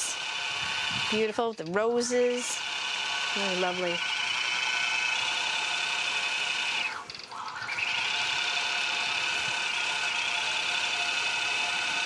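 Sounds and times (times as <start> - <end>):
quilting machine whine: 0.0 - 12.0.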